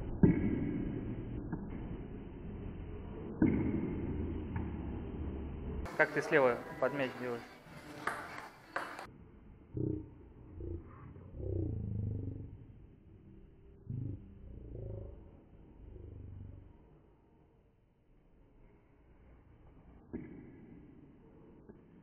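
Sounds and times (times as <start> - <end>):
low wavering rumble: 0.0 - 5.9, 9.5 - 17.3
table tennis ball taps: 8.0 - 9.1.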